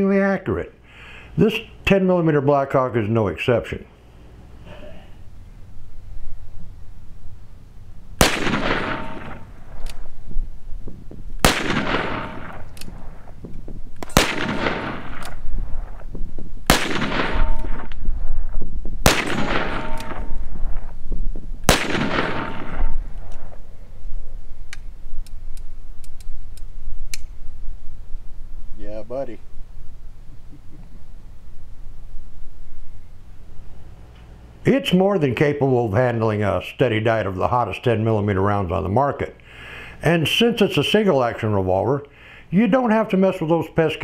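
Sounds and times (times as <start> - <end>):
faint clicks of revolver handling: 9.8 - 10.0, 12.7 - 14.2, 24.7 - 27.3
revolver shots: 11.4 - 13.4, 16.7 - 18.1.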